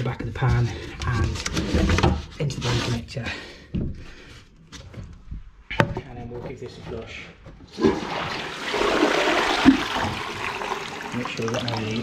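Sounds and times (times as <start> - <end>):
toilet flushing: 7.7 - 12.0.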